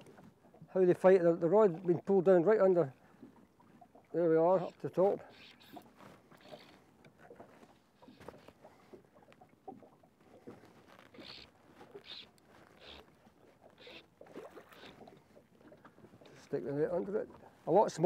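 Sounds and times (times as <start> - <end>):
fish splashing in water: 5.2 - 16.2.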